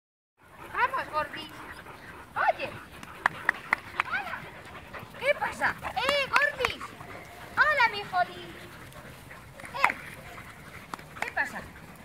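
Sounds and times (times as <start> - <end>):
dogs barking and yelping: 0.4 - 12.0.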